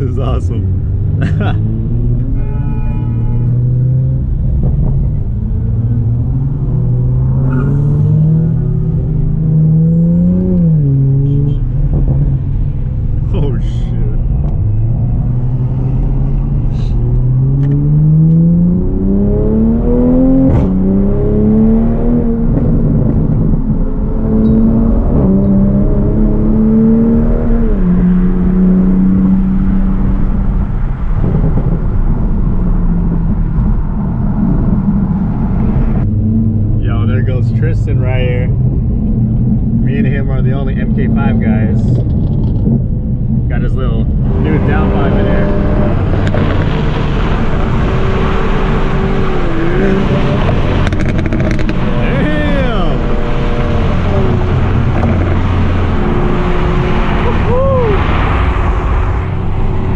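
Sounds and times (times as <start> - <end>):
car engine accelerating through gears: 3.4 - 59.9.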